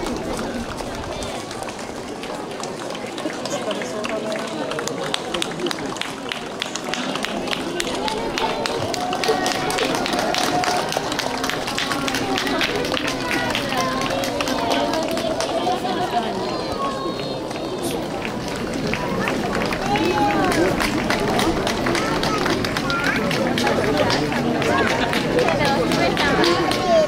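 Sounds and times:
crowd talking in street: 0:00.0 - 0:27.0.

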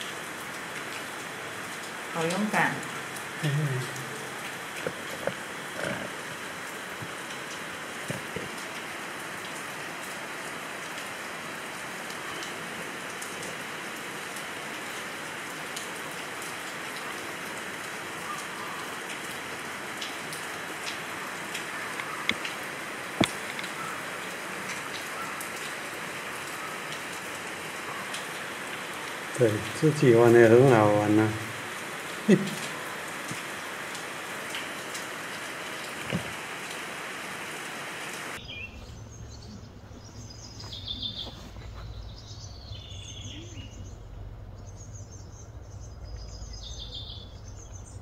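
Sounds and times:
steady rain falling: 0:00.0 - 0:48.0
sharp raindrop taps: 0:01.7 - 0:09.7, 0:15.7 - 0:26.1, 0:26.8 - 0:36.9.

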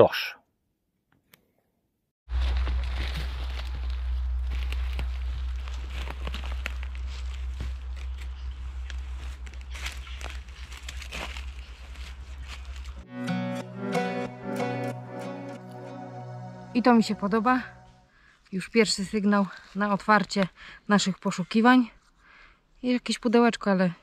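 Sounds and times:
low rumble: 0:02.3 - 0:11.6
footsteps crunching dry leaves: 0:02.3 - 0:13.0
background music: 0:13.0 - 0:18.1.

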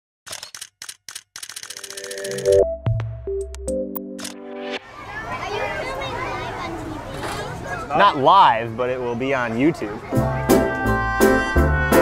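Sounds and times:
camera shutter clicks: 0:00.3 - 0:02.6.

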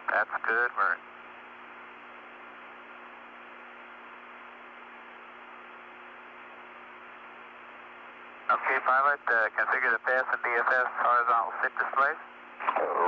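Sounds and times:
radio hiss: 0:00.0 - 0:01.0, 0:08.4 - 0:13.0
faint hum: 0:00.0 - 0:13.0.

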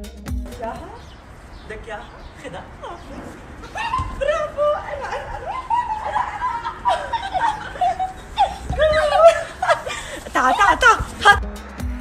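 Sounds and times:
child and woman laughing and squealing: 0:02.8 - 0:11.4.

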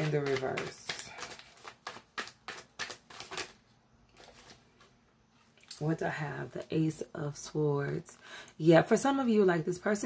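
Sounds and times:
cards being shuffled: 0:00.0 - 0:04.9.

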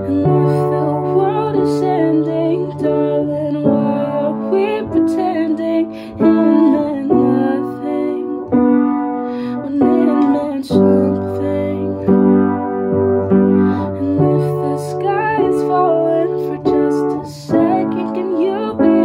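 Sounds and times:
woman singing: 0:00.0 - 0:12.7, 0:13.3 - 0:19.0
piano chords: 0:00.0 - 0:19.0.

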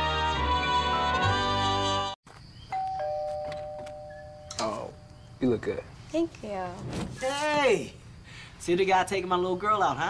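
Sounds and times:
two-tone doorbell chime: 0:02.7 - 0:05.0.

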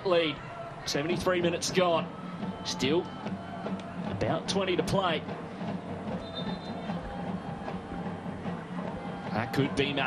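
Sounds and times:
faint crowd noise: 0:00.0 - 0:10.0.

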